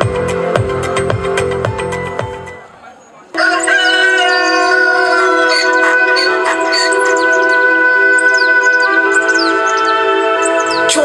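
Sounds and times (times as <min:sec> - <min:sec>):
advertising music with a beat: 0:00.0 - 0:02.6
high falling chirps: 0:03.4 - 0:10.9
sustained chord: 0:03.8 - 0:11.0.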